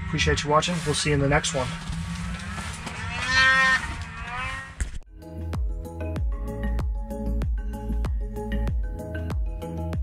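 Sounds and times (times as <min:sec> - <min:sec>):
snowmobile engine passing: 0:00.0 - 0:05.0.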